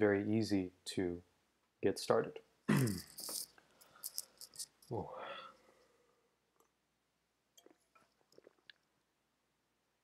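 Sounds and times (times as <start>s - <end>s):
person clearing throat: 2.7s - 3.2s
faint breath: 5.1s - 6.3s.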